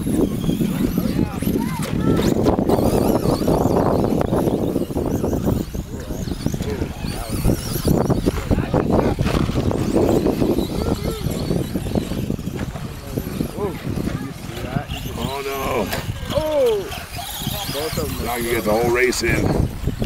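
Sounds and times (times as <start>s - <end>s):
people talking: 0.0s - 19.6s
rc car motors whining: 0.0s - 20.0s.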